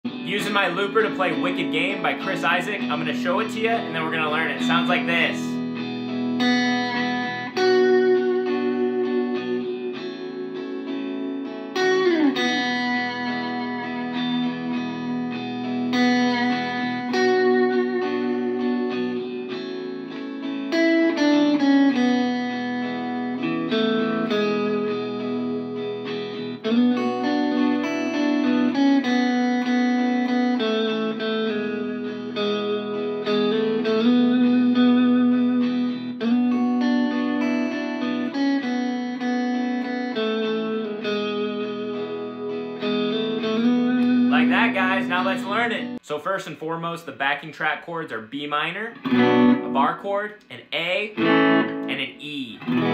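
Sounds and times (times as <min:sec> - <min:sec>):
looped electric guitar chords: 0:00.0 - 0:46.1, 0:48.9 - 0:52.9
electric guitar lead with slides: 0:00.1 - 0:46.0, 0:49.0 - 0:52.9.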